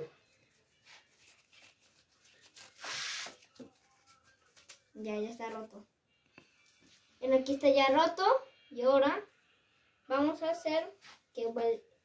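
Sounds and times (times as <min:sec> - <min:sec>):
paper tearing: 0:00.8 - 0:04.8.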